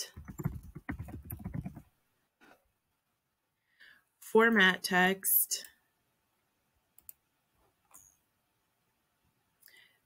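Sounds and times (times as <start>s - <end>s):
faint computer mouse clicks: 7.0s - 7.2s.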